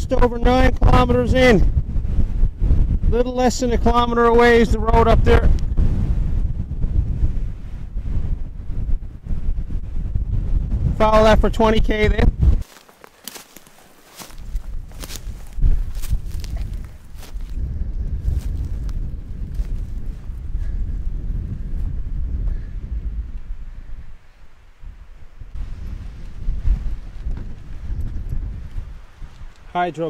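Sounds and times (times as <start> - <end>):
wind rumble on microphone: 0.0 - 30.0
steps rustling through brush: 12.4 - 20.7, 25.5 - 29.8
footsteps: 12.6 - 17.6, 18.2 - 20.4.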